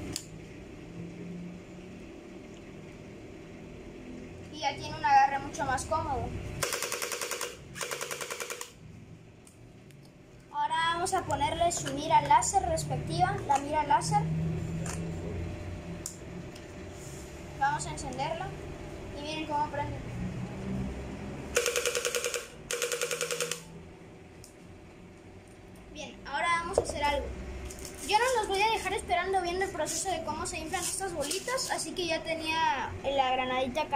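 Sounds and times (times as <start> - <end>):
gel blaster firing rapid clacks: 6.6 - 8.8, 21.6 - 23.7
gel blaster motor buzzing rattle: 21.6 - 23.7.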